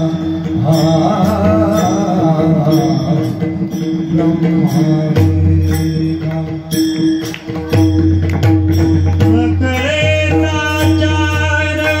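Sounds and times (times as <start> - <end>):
devotional chanted singing: 0.0 - 7.1, 9.2 - 12.0
hand drums: 0.0 - 12.0.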